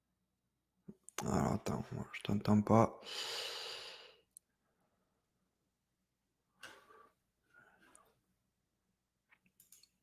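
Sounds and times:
person breathing out: 3.0 - 4.3.

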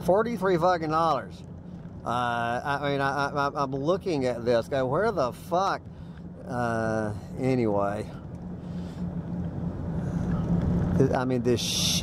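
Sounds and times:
road and tyre noise: 0.0 - 12.0
truck engine drone: 0.0 - 12.0.

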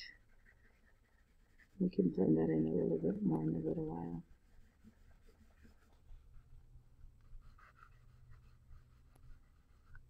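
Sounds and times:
pencil scratching on paper: 0.0 - 10.0.

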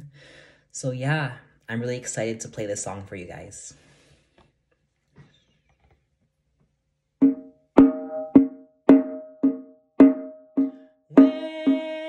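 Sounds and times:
hand drum beats: 7.2 - 12.0.

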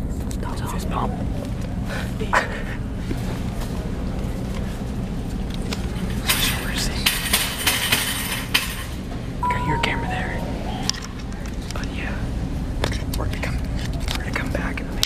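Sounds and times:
short beep: 9.4 - 11.2.

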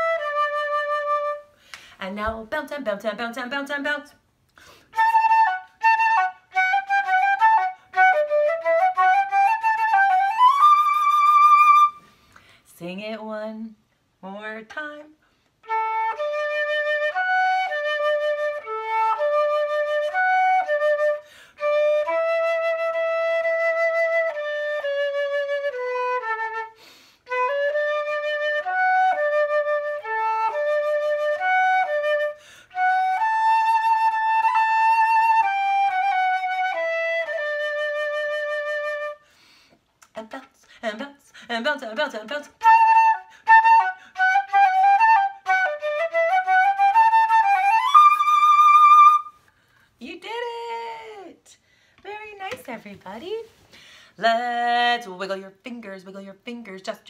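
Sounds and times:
flute melody: 0.0 - 1.6, 4.9 - 12.1, 15.6 - 39.3, 42.4 - 49.5
woman's voice: 2.0 - 4.2, 12.7 - 15.2, 40.1 - 42.6, 50.0 - 53.5, 54.2 - 57.0.

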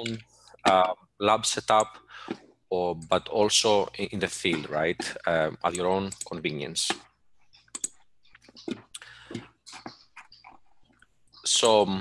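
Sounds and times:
computer keyboard clicks: 7.7 - 8.0.

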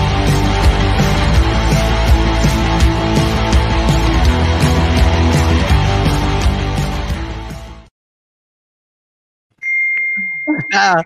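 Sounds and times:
high steady ding tone: 9.6 - 11.0
man laughing: 10.5 - 11.0.

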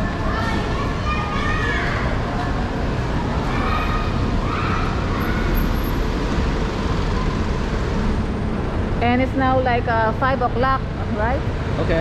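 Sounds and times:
cars and vans passing: 0.0 - 12.0
street traffic: 0.0 - 12.0.

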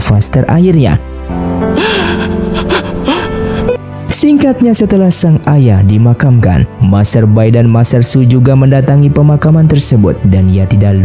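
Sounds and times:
man weeping and sobbing: 1.6 - 3.9.

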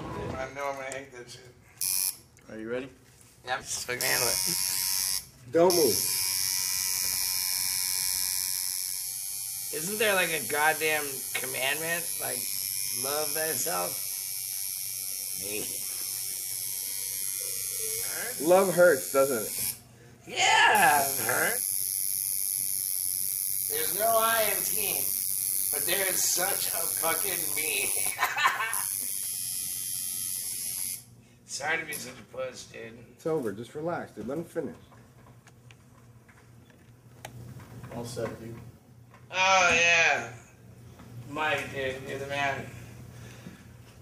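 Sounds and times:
tattoo machine buzzing: 1.8 - 2.3, 3.9 - 19.8, 20.7 - 31.1.

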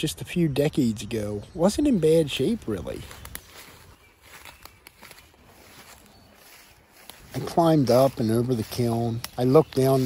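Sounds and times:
footsteps through leafy undergrowth: 1.8 - 10.0.

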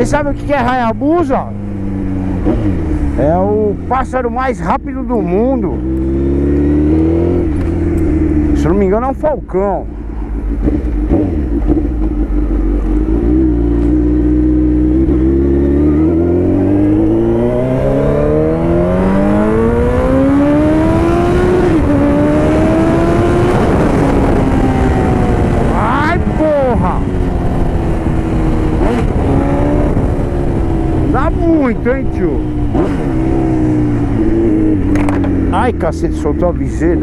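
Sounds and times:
motorcycle engine revving: 0.0 - 37.0.

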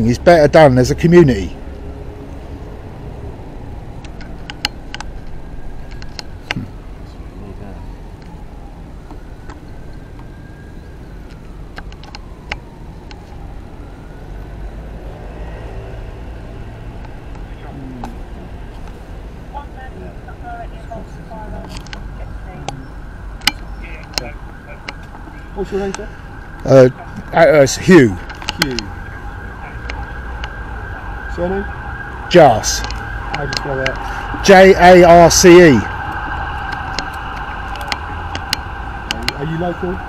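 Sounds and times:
faint passing vehicles: 0.0 - 40.0
low rumble of road traffic: 0.0 - 40.0.

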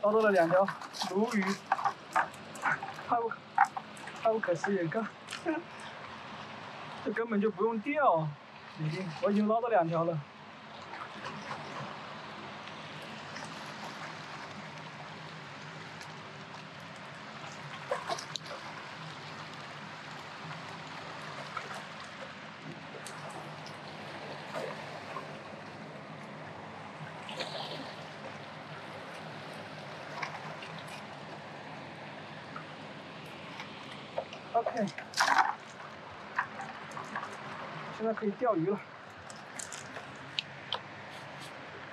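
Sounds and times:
small knocks and splashes: 0.0 - 7.0, 10.6 - 26.4, 27.0 - 41.5
river water running: 0.0 - 41.9.

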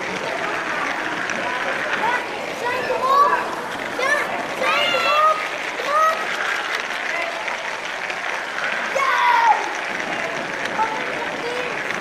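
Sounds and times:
crowd voices: 0.0 - 12.0
toy train rattling on track: 0.0 - 12.0.

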